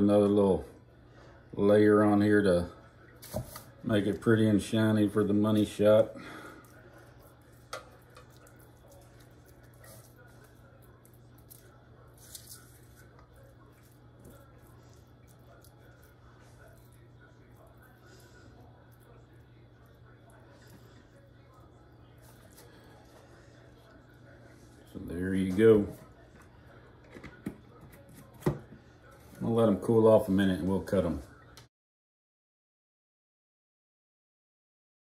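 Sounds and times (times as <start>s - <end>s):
brush dabbing wet sauce: 2.5s - 27.0s.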